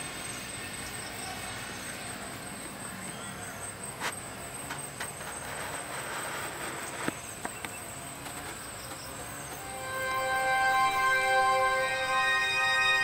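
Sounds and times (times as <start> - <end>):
outdoor hiss: 0.0 - 13.0
high-pitched insect drone: 9.2 - 13.0.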